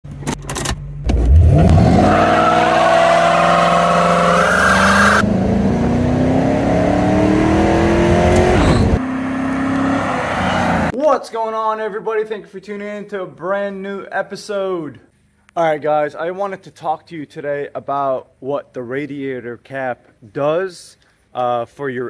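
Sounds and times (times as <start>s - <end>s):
car engine accelerating: 1.1s - 10.9s.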